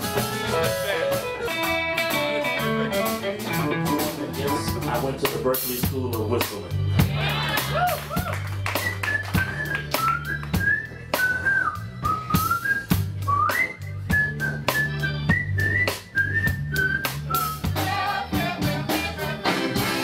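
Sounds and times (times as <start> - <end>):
jazz band bass and drums: 0.0 - 20.0
person whistling a melody: 8.2 - 17.9.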